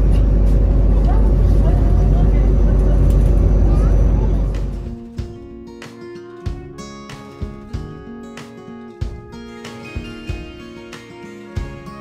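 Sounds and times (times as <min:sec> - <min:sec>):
bus engine and tyres rumbling: 0:00.0 - 0:05.3.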